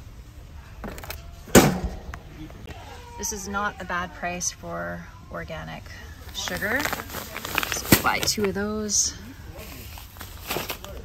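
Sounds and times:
box thumping into wire cart: 0:00.8 - 0:02.1.

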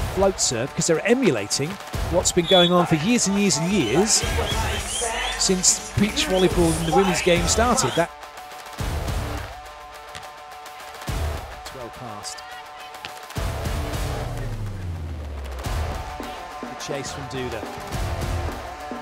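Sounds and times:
music with steady bass line: 0:01.9 - 0:10.1, 0:11.0 - 0:11.7, 0:13.4 - 0:19.0.

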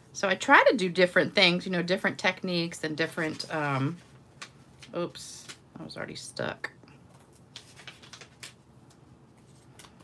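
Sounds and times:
paper and cardstock rustling: 0:03.0 - 0:05.6, 0:07.0 - 0:10.0.

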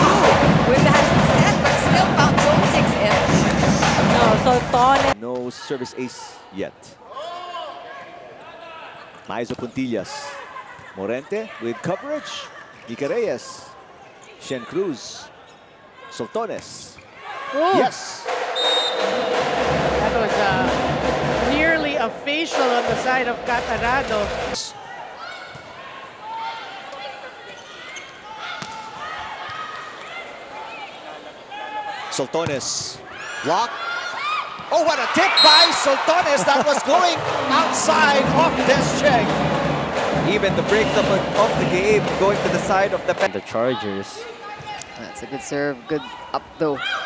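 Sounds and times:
low arena crowd hum: 0:00.0 - 0:05.2, 0:18.2 - 0:31.9, 0:33.8 - 0:47.0
wavering call or cheer: 0:35.2 - 0:36.0
hall background murmur: 0:36.1 - 0:43.4.

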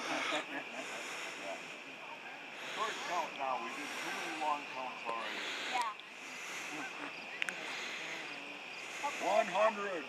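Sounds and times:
people talking indistinctly: 0:00.0 - 0:10.0
steady hiss: 0:00.0 - 0:10.0.

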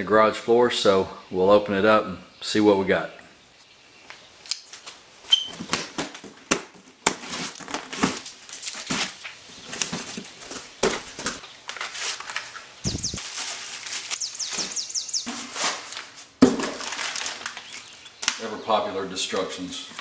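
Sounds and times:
cardboard crinkling and rustling: 0:04.7 - 0:18.4
bird singing high falling notes: 0:12.9 - 0:13.2, 0:14.2 - 0:15.3.

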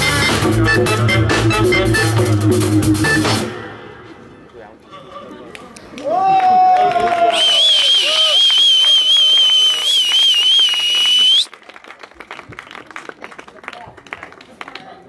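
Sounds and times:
scattered hand clapping: 0:05.5 - 0:15.0
shrill whistle from crowd: 0:07.3 - 0:11.5.

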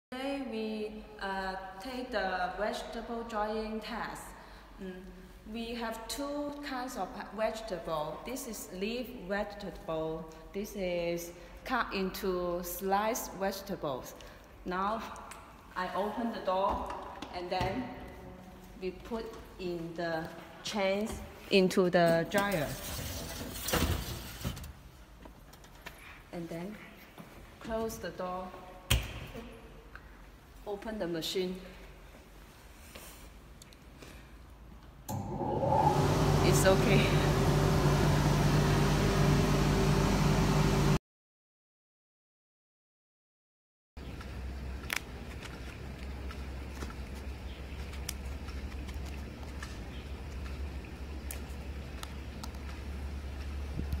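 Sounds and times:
steady low hum: 0:35.1 - 0:41.0.

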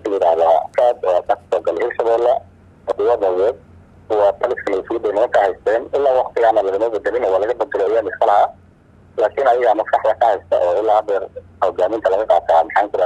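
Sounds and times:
man talking: 0:00.0 - 0:08.6, 0:09.2 - 0:13.0
faint steady hum: 0:00.0 - 0:13.0.

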